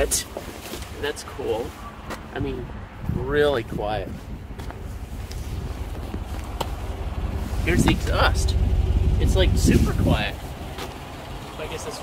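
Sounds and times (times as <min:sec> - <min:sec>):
car engine idling: 0:04.4 - 0:12.0.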